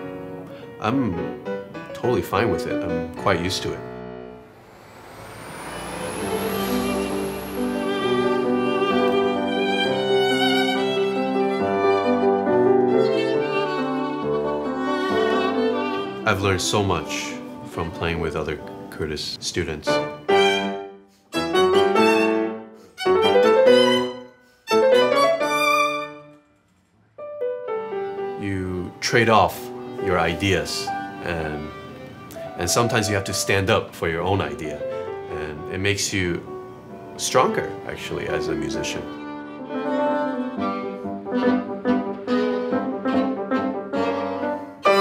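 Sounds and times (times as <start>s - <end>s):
violin and piano playing: 0.0s - 26.3s, 27.7s - 45.0s
background music: 0.0s - 26.4s, 27.2s - 45.0s
thin high tone: 4.3s - 9.4s.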